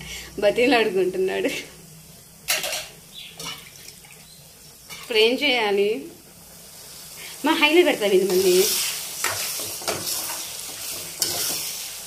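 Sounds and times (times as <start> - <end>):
eggs sizzling in oil: 0.0 - 12.0.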